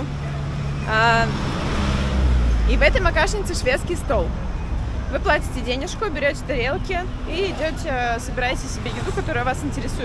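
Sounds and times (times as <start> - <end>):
city road traffic: 0.0 - 10.0.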